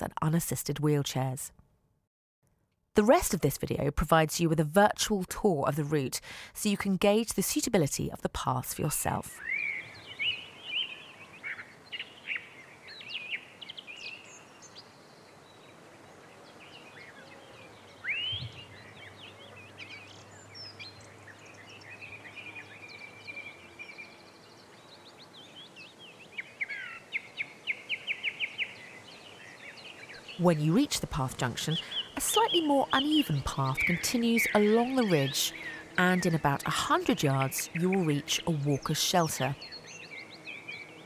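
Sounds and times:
small birds chirping: 7.0s - 41.0s.

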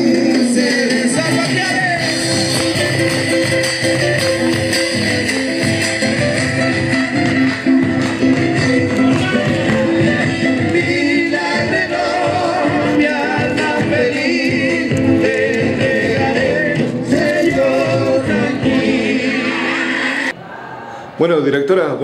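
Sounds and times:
folk song with vibrato singing: 0.0s - 5.9s, 7.1s - 20.3s
steady beat: 0.0s - 18.8s.

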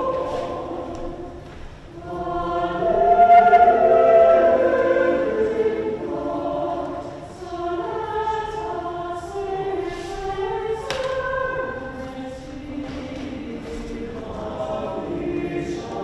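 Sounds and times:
church choir singing: 0.0s - 16.0s.

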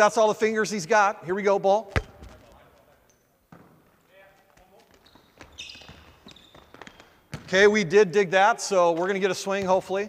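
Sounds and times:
shoe squeak on gym floor: 4.9s - 7.2s.

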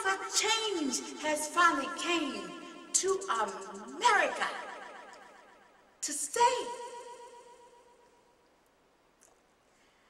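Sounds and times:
woman reciting: 0.0s - 4.8s, 6.0s - 7.1s.

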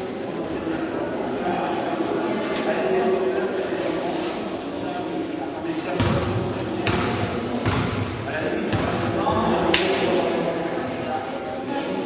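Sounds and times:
basketball bouncing on gym floor: 6.0s - 8.1s.

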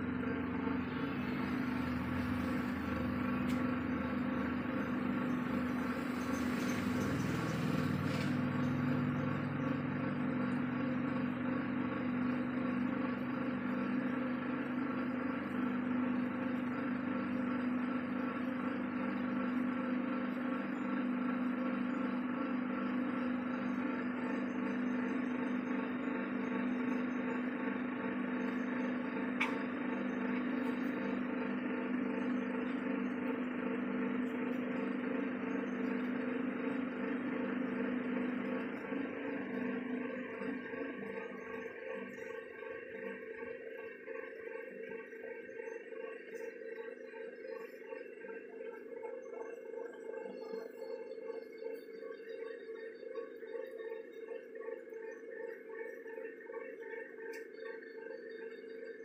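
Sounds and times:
potter's wheel motor humming: 0.0s - 59.0s.

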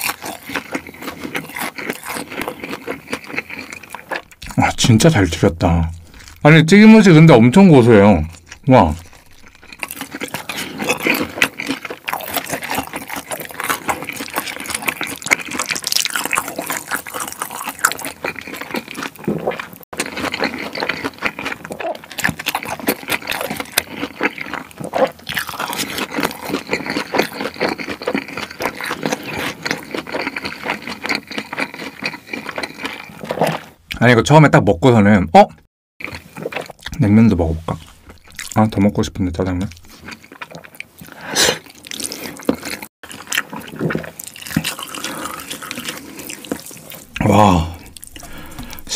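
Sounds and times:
noodles being slurped and chewed: 0.0s - 5.2s, 5.9s - 6.5s, 7.5s - 33.8s, 36.0s - 48.9s.

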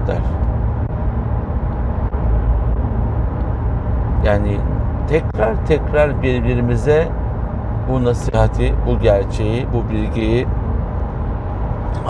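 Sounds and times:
car cabin road noise: 0.0s - 12.0s.

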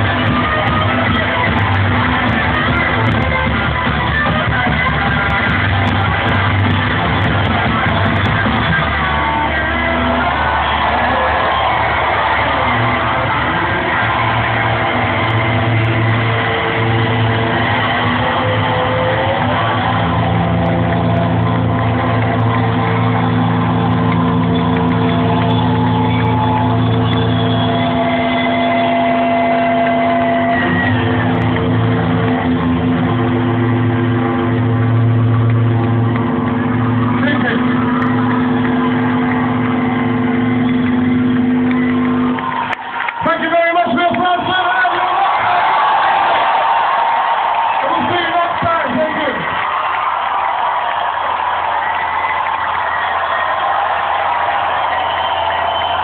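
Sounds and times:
live rock band playing: 0.0s - 42.4s.

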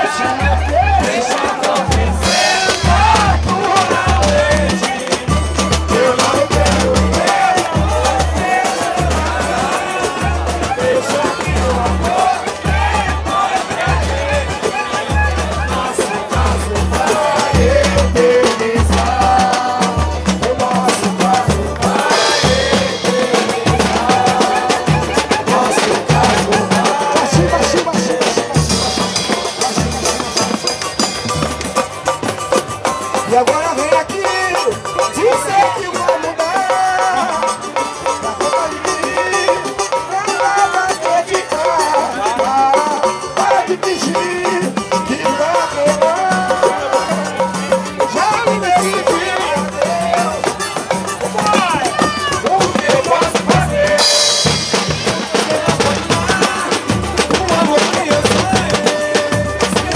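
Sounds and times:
large hand drum beat: 0.0s - 59.9s
samba band playing: 0.0s - 59.9s
voices singing: 0.0s - 59.9s.

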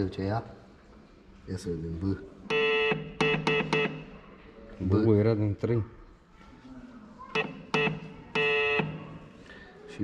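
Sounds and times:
morse buzzer beeps: 2.5s - 4.1s, 7.4s - 9.2s.

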